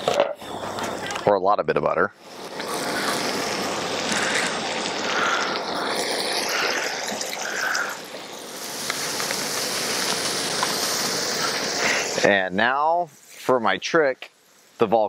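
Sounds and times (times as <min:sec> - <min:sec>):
oil sizzling on a griddle: 0:00.0 - 0:15.0.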